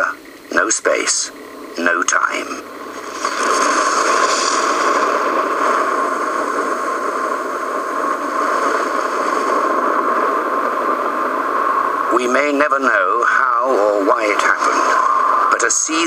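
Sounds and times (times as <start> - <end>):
loud steady rushing noise: 0.0 - 16.0.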